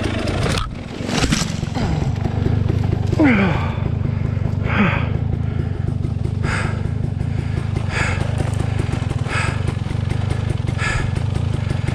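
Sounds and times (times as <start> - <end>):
dirt bike engine idling: 0.0 - 11.9.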